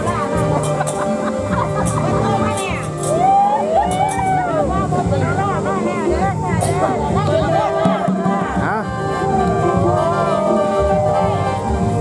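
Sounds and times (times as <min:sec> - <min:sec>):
light percussion: 0:00.0 - 0:12.0.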